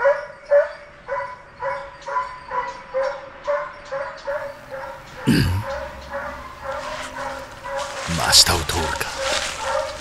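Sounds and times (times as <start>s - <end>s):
dog barking: 0.0s - 10.0s.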